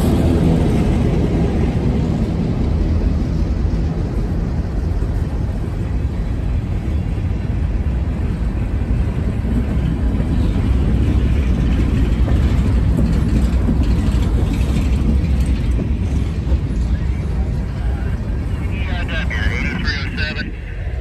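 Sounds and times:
freight train wheels rumbling on rails: 0:00.0 - 0:21.0.

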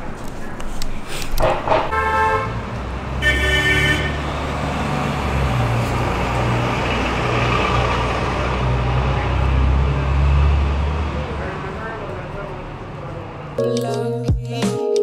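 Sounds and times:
street traffic rumble: 0:00.0 - 0:14.1
car horn toot: 0:01.8 - 0:02.6, 0:03.2 - 0:04.2.

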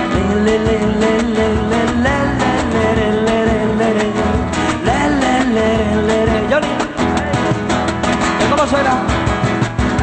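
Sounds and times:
guitars strumming and picking: 0:00.0 - 0:10.0.

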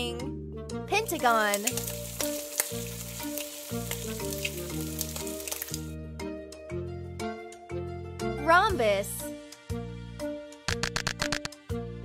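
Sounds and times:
children's background music: 0:00.0 - 0:12.0
egg frying sizzle: 0:01.1 - 0:06.0.

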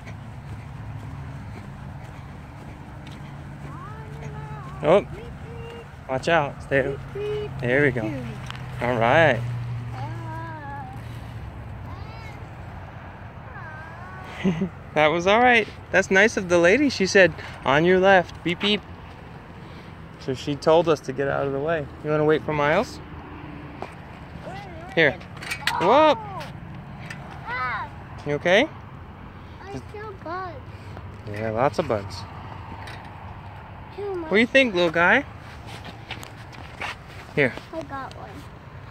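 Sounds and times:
outdoor background noise: 0:00.0 - 0:38.9
person calling out: 0:03.6 - 0:06.0, 0:13.5 - 0:14.7, 0:24.4 - 0:26.6.

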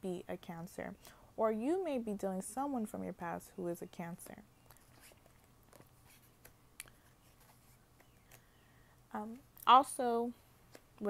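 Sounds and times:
faint low hum: 0:00.0 - 0:11.0
cards clicking and rustling: 0:04.6 - 0:08.5.

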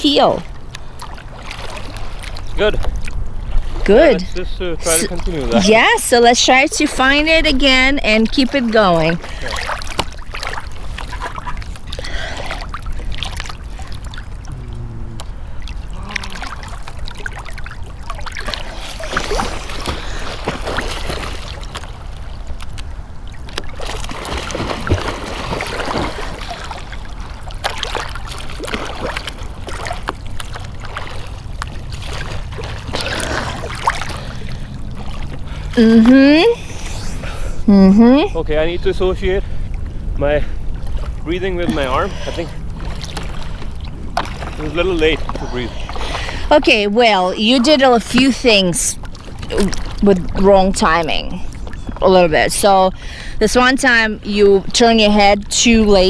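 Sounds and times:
lake water lapping and sloshing: 0:00.0 - 0:56.0
steady low rumble: 0:10.3 - 0:20.5.

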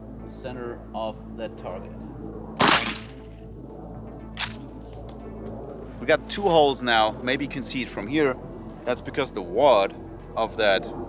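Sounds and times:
shotgun shot: 0:02.6 - 0:03.2.

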